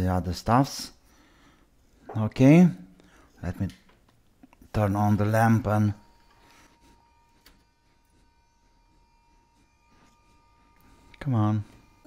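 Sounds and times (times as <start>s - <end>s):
thin steady tone: 4.7s - 12.0s.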